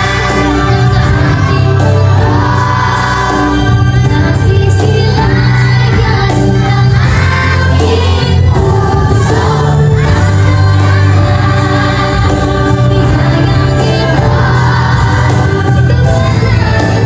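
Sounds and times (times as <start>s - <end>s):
backing track with bass line: 0.0s - 17.0s
children singing together: 0.0s - 17.0s.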